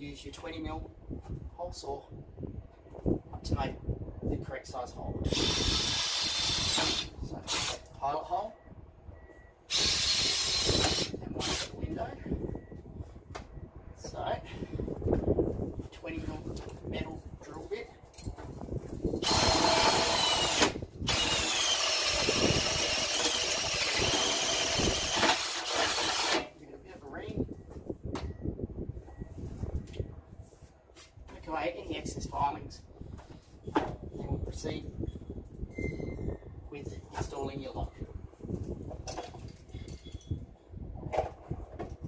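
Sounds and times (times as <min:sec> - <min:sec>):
cordless drill whining: 0:05.3 - 0:07.9, 0:09.7 - 0:11.8, 0:19.2 - 0:26.5.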